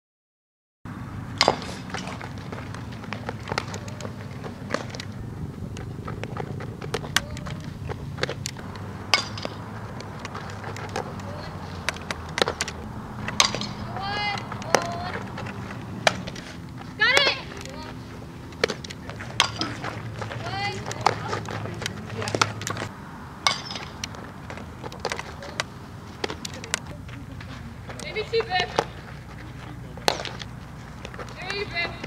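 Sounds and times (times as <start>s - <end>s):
players shouting: 1.3s - 32.0s.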